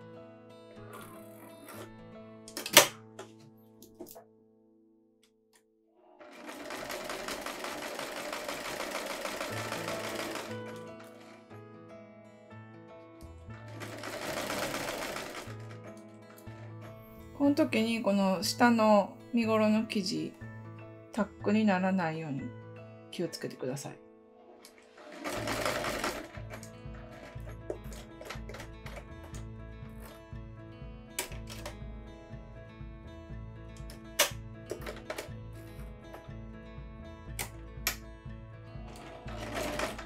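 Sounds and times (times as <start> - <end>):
soft background music: 0.0 - 4.4, 6.0 - 40.0
sewing machine stitching: 6.1 - 11.4, 13.7 - 16.9, 24.7 - 29.1, 38.8 - 40.0.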